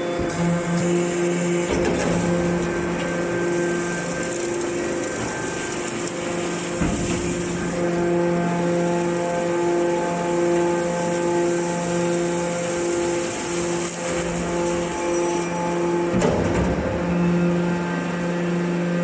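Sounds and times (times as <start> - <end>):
hydraulic baler pulsing hum: 0.0 - 19.0.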